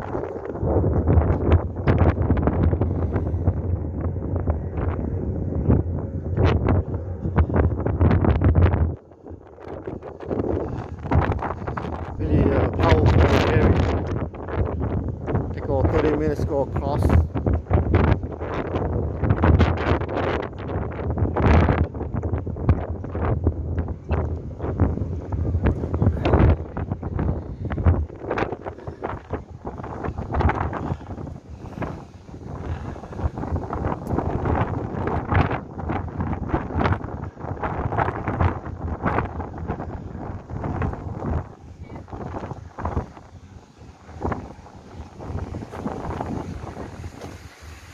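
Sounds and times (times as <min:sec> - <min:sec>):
wind buffeting microphone: 0:00.0 - 0:47.9.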